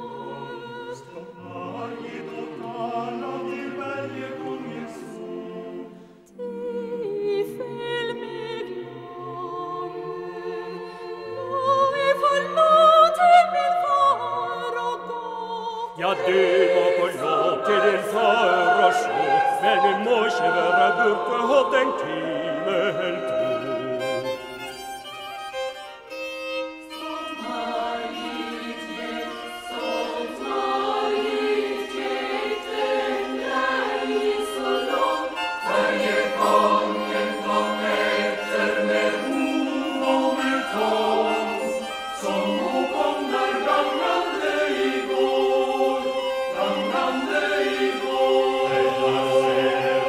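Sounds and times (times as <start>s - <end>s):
choir singing held chords: 0.0s - 12.8s, 13.8s - 24.8s, 26.8s - 50.0s.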